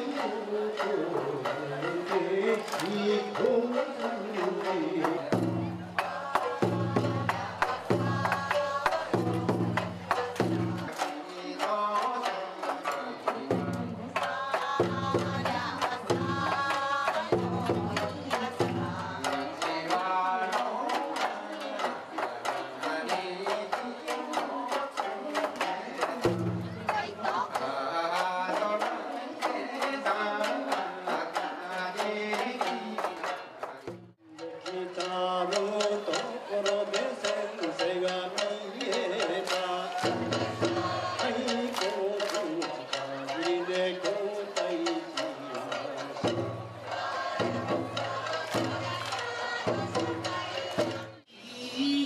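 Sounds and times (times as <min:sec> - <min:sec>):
taiko drum beats: 0:00.0 - 0:28.9, 0:30.4 - 0:51.2
shamisen: 0:00.0 - 0:51.2
sharp percussive strikes: 0:00.2 - 0:21.4.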